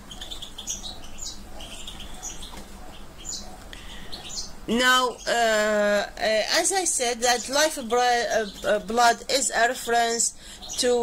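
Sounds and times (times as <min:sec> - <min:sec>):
faint steady hum: 0:00.0 - 0:11.0
small birds chirping: 0:00.0 - 0:11.0.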